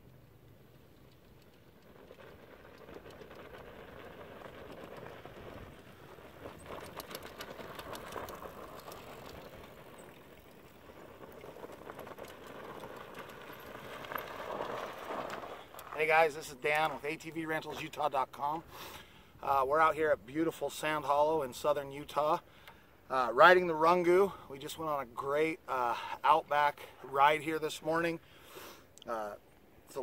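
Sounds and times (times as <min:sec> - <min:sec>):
bike tyres on dirt trail: 0:00.1 - 0:28.9.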